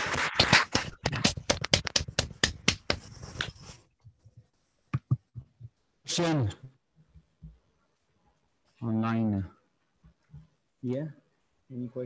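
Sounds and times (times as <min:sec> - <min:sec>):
small audience clapping: 0:00.0 - 0:03.1.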